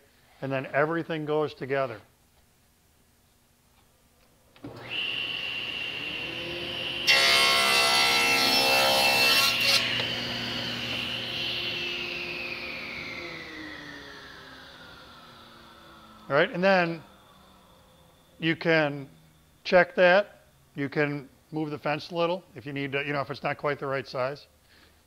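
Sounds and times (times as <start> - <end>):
table saw whining: 4.6 - 20.8
table saw ripping board: 4.7 - 13.1.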